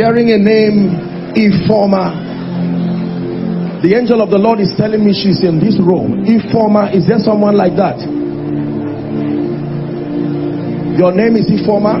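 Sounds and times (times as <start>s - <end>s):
sustained chord background music: 0.0s - 12.0s.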